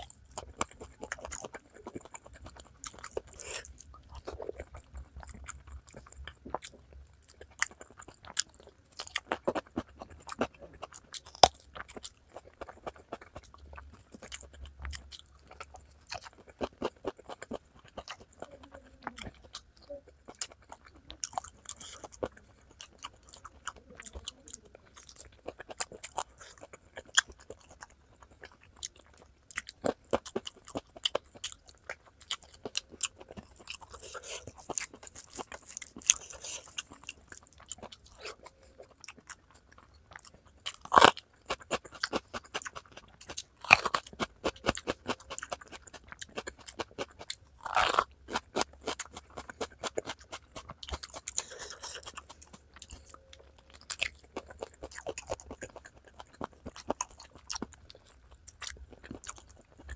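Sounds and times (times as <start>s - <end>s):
chewing and crunching: 0.0s - 59.9s
bell pepper crunch: 20.3s - 59.9s.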